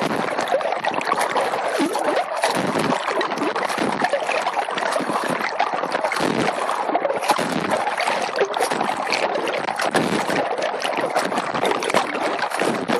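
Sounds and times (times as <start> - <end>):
water splashing from swim strokes: 0.0 - 12.9.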